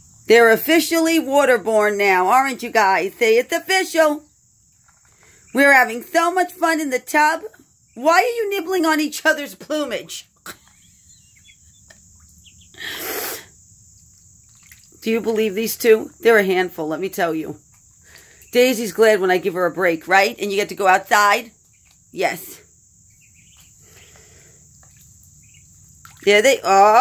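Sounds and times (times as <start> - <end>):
ducklings peeping faintly: 0.3 - 27.0
duckling peeping: 9.8 - 12.9, 20.4 - 26.9.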